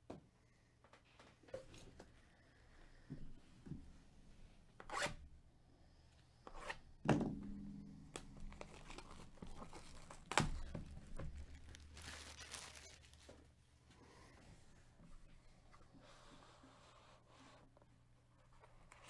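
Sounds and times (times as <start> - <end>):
plastic shrink wrap tearing: 8.4 - 13.4.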